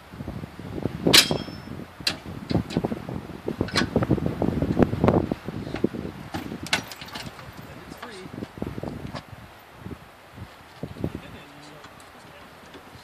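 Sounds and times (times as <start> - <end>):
sharp metallic clinks: 1.1 - 1.8, 6.3 - 8.2.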